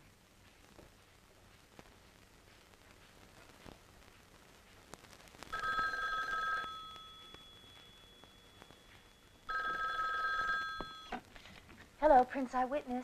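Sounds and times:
telephone bell ringing: 5.5s - 11.2s.

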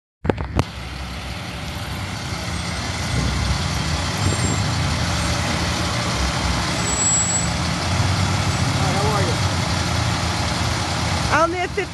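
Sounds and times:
truck engine driving past: 0.6s - 11.9s.

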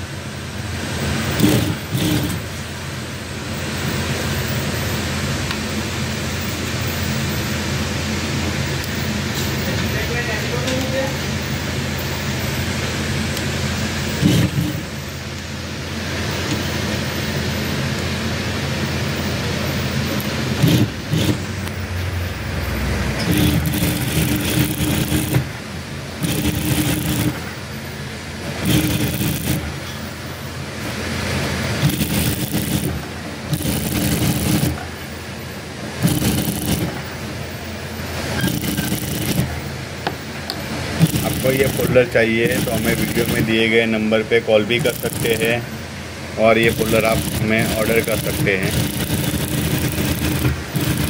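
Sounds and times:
motor hum: 0.0s - 3.5s, 10.8s - 51.0s
sewing machine stitching: 1.2s - 2.5s, 14.2s - 14.9s, 20.5s - 21.6s, 22.7s - 25.6s, 26.2s - 27.6s, 28.4s - 30.0s, 31.7s - 35.0s, 36.0s - 37.1s, 38.2s - 39.6s, 41.0s - 43.7s, 44.6s - 45.6s, 46.6s - 51.0s.

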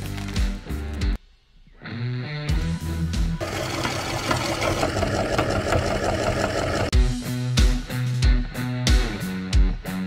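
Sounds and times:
soap crumbling and crackling: 0.0s - 0.6s
background music: 0.0s - 10.0s.

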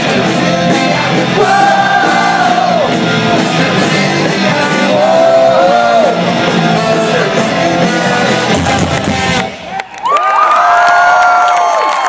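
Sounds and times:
live band playing loudly: 0.0s - 9.8s
crowd cheering and whooping: 9.6s - 12.0s.

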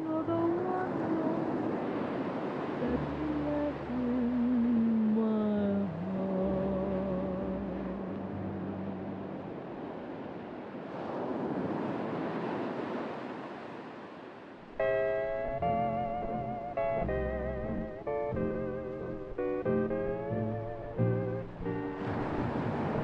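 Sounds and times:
distant ocean waves: 0.0s - 23.0s
steel guitar tune: 14.8s - 23.0s.

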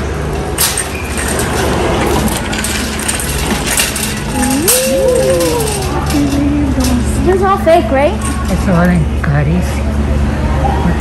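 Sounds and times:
shopping cart rolling and rattling: 0.0s - 9.0s
steady low hum: 0.0s - 11.0s
sharp clinks: 0.6s - 7.4s.

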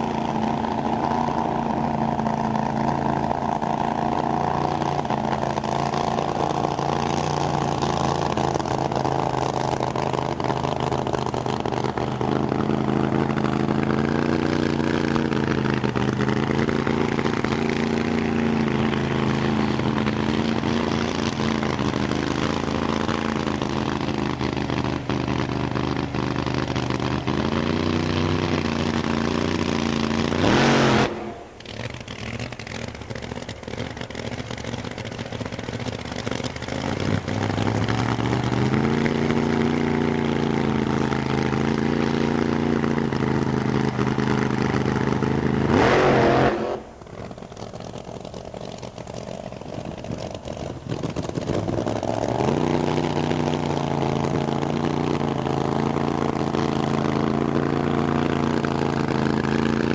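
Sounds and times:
supercharged engine idling: 0.0s - 59.9s.

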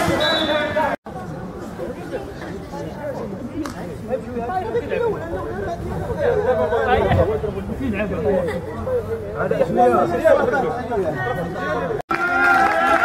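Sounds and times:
men talking over each other: 0.2s - 12.0s.

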